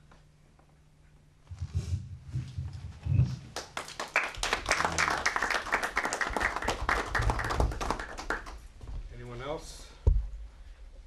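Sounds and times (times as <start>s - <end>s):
audience applauding: 3.5s - 8.6s.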